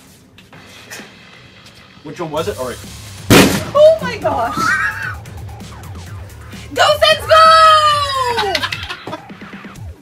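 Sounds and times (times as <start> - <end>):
background music: 0.6 - 10.0.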